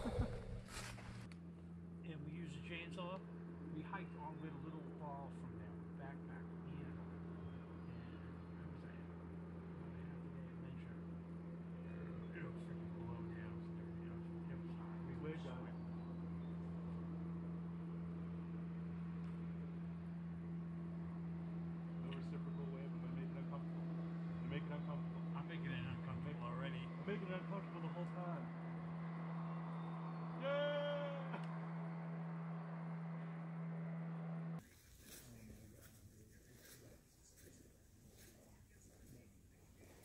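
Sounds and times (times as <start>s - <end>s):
distant conversation: 0.0s - 40.0s
steady low hum: 0.0s - 40.0s
loud drawn-out vocal call: 30.2s - 31.8s.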